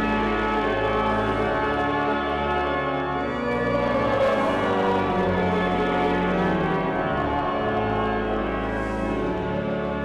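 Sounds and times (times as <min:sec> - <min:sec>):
pipe organ playing chords: 0:00.0 - 0:10.0.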